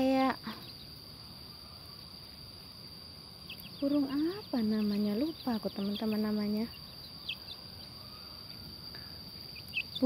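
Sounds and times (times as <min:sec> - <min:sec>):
faint outdoor hiss: 0:00.0 - 0:10.0
insects droning: 0:00.0 - 0:10.0.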